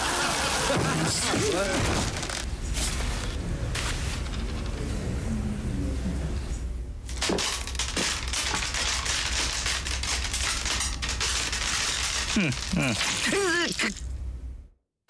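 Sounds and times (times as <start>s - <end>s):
dense crackling clicks: 1.8s - 2.5s, 7.1s - 13.9s.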